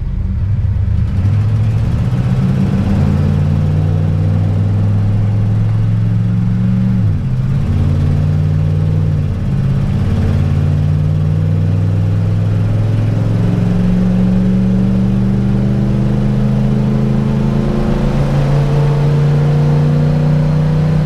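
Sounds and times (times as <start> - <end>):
motorhome engine accelerating: 0.0 - 21.0.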